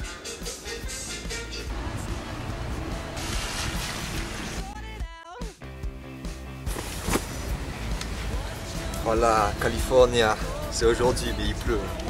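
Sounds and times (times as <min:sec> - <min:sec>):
music: 0:00.0 - 0:12.0
road traffic passing: 0:01.7 - 0:04.6, 0:06.8 - 0:10.0.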